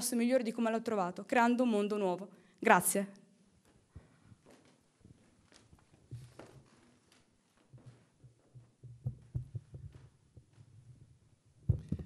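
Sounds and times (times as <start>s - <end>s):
microphone handling clicks: 5.4s - 11.0s, 11.7s - 12.0s
faint low thuds: 7.8s - 12.0s.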